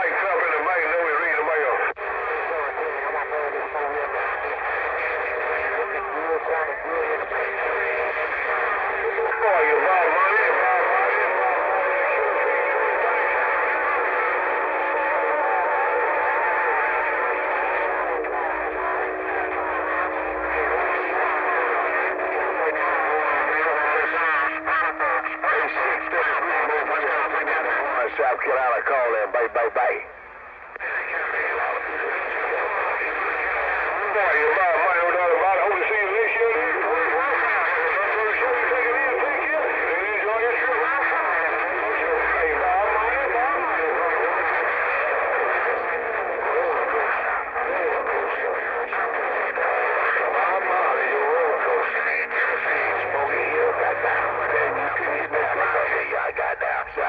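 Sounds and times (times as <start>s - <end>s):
garbled radio voices: 0.0s - 57.0s.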